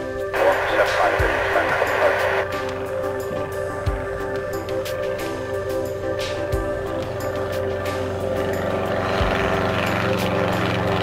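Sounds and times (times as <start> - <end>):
electronic music with synth chords: 0.0 - 11.0.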